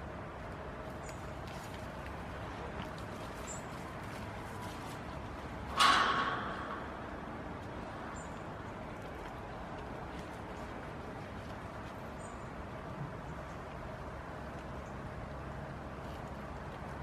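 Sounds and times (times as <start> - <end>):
hooves clanging on metal fence: 5.6 - 8.4.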